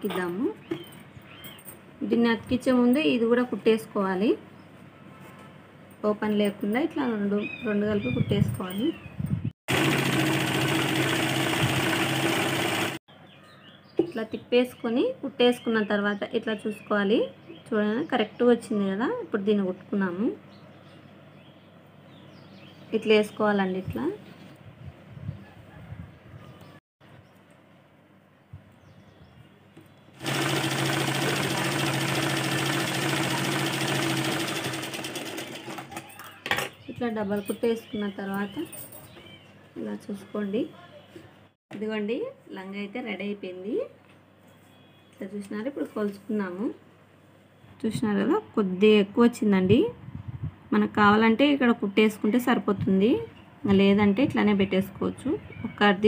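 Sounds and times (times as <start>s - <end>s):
woman speaking: 0.0s - 0.6s, 2.0s - 4.4s, 6.0s - 9.0s, 14.0s - 20.4s, 23.0s - 24.2s, 36.9s - 38.8s, 39.8s - 44.0s, 45.2s - 46.8s, 47.8s - 50.0s, 50.7s - 56.0s
sewing machine stitching: 9.7s - 13.0s, 30.2s - 36.1s.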